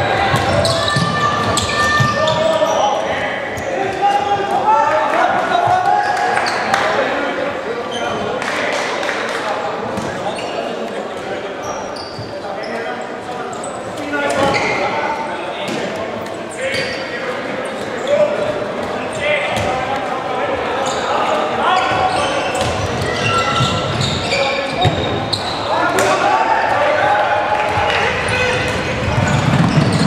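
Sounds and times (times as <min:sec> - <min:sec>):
players and spectators shouting: 0:00.0 - 0:07.9, 0:18.0 - 0:30.0.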